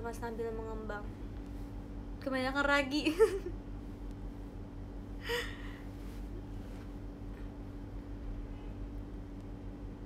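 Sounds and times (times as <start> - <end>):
steady low hum: 0.0 - 10.0
woman gasping: 5.2 - 5.9.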